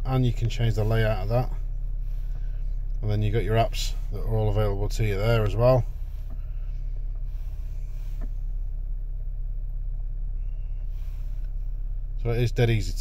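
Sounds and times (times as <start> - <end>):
car cabin hum: 0.0 - 13.0.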